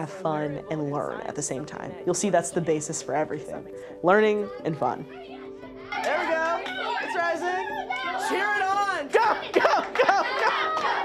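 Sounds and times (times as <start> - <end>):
background music with held notes: 0.0 - 11.0
children chattering and exclaiming: 4.3 - 11.0.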